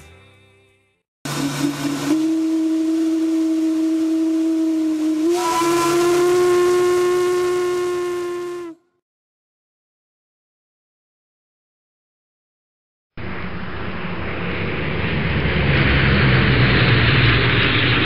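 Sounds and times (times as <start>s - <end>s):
riverboat whistle blast: 1.3s - 9.0s.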